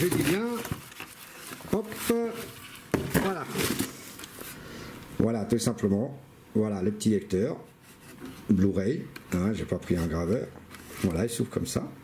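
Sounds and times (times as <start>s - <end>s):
plastic and foam rustling: 0.0s - 4.6s.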